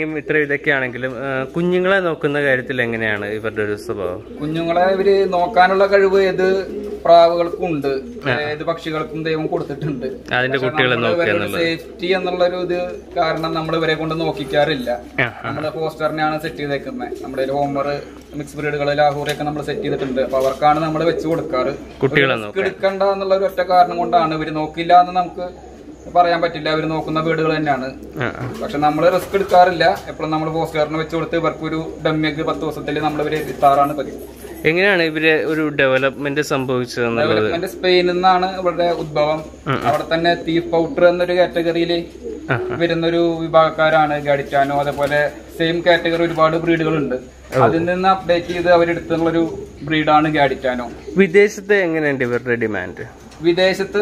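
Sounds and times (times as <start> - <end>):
man speaking: 0.0 - 21.4, 22.0 - 25.1, 26.2 - 29.6, 34.6 - 38.1, 38.7 - 41.0, 42.5 - 45.1, 45.7 - 54.0
pigeons cooing: 0.0 - 54.0.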